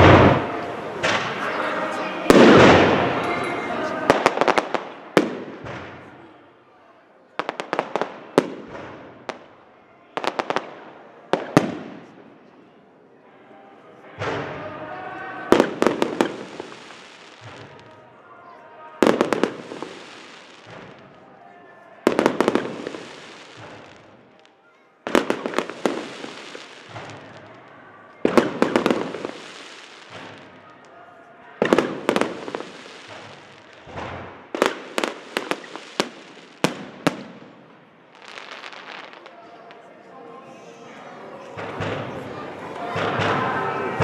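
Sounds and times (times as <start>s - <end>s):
firework crackling: 0.0s - 6.2s, 15.4s - 18.0s, 19.0s - 21.4s, 22.0s - 31.0s, 31.6s - 39.9s
firework shells bursting: 31.6s - 37.4s.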